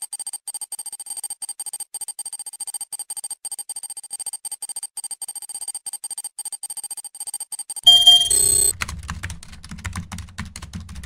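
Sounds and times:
rapid short beeps: 0.2 - 8.7
loud electronic chime: 7.9 - 8.7.

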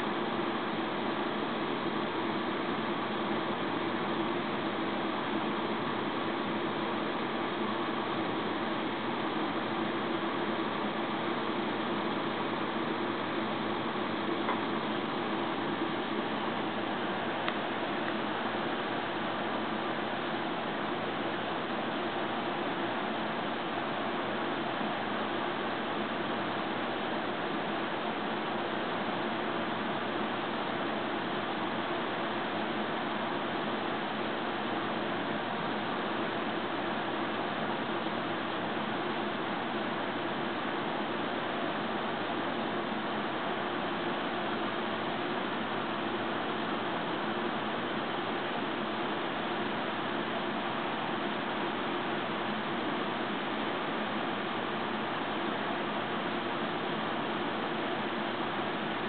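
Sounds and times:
box fan running: 0.0 - 59.0.

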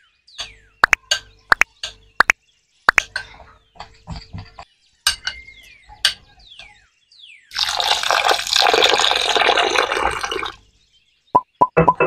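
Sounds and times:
water pouring into bowl: 7.5 - 10.6.

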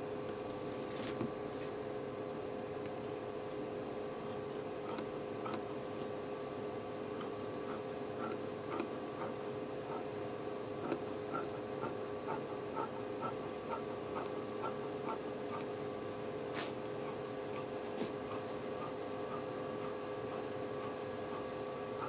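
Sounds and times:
faint steady hum: 0.0 - 22.0
scissors snipping fabric: 7.2 - 9.3.

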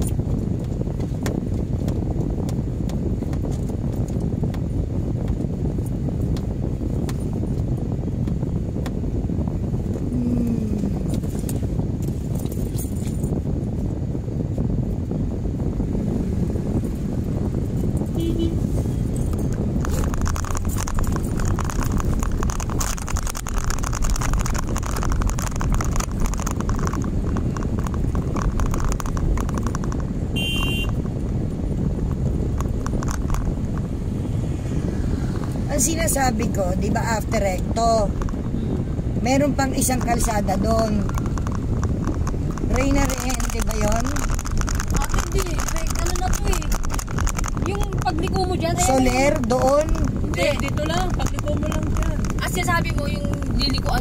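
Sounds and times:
car engine rumble: 0.0 - 54.0
road noise: 0.0 - 54.0.

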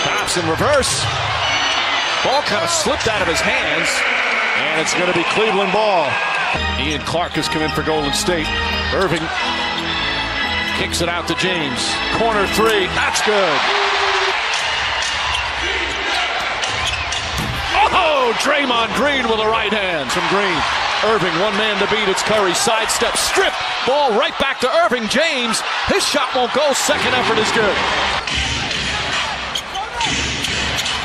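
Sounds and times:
arena crowd noise: 0.0 - 31.0.

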